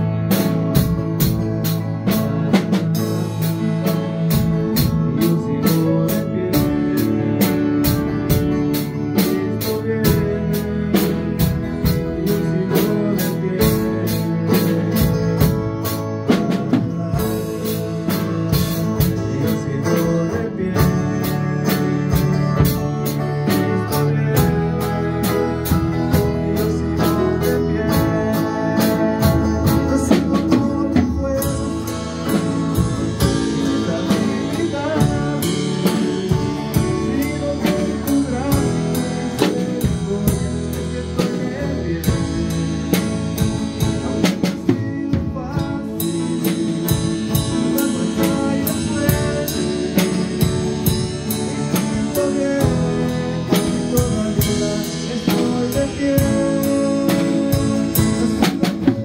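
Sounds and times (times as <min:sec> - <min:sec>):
drum kit with cymbals: 0:00.0 - 0:59.0
electric guitar: 0:00.0 - 0:59.0
grand piano: 0:00.0 - 0:59.0
man singing: 0:00.0 - 0:59.0.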